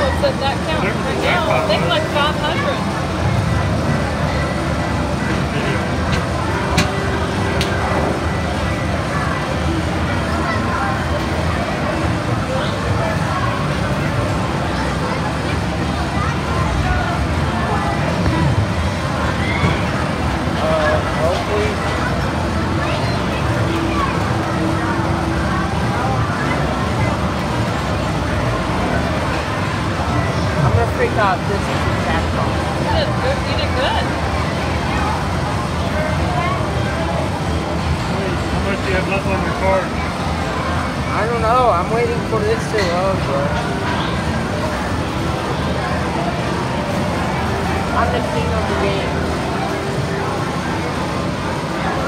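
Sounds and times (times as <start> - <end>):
arcade game machine sounds: 0.0 - 52.0
crowd babble: 0.0 - 52.0.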